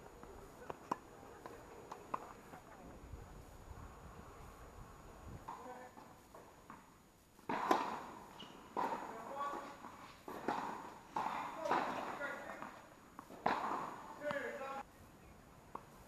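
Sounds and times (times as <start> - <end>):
tennis balls struck by rackets: 0.2 - 2.7, 5.4 - 14.8
tennis balls bouncing on hard court: 7.4 - 14.8.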